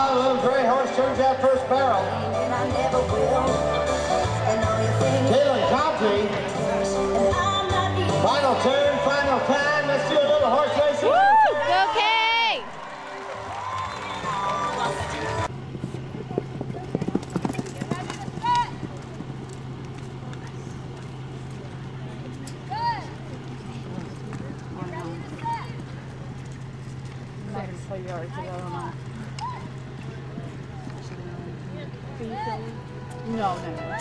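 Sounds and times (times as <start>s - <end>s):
people shouting and whooping: 10.5s - 15.5s
steady low hum: 13.4s - 34.0s
hoofbeats on dirt: 13.6s - 34.0s.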